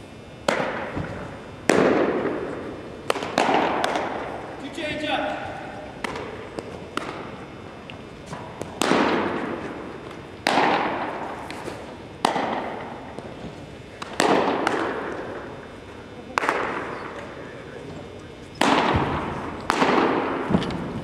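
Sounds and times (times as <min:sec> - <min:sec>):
gymnasium echo: 0:00.4 - 0:07.6, 0:08.2 - 0:21.0
baseballs popping into mitts: 0:03.0 - 0:04.2, 0:06.0 - 0:15.4.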